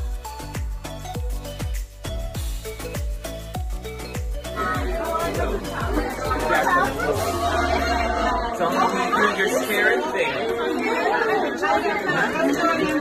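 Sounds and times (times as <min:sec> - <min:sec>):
background music with deep bass: 0:00.0 - 0:08.7
people chattering: 0:04.5 - 0:13.0.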